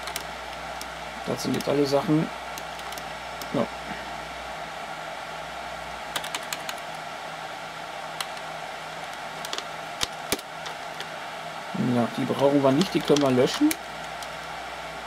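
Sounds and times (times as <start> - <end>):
computer keyboard keystrokes: 0.0 - 0.9, 6.1 - 6.9, 12.8 - 14.5
server cooling fans whirring: 0.0 - 15.0.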